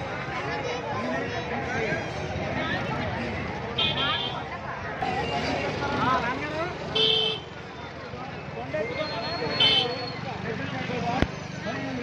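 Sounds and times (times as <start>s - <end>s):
people's voices: 0.0s - 12.0s
street traffic: 0.0s - 12.0s.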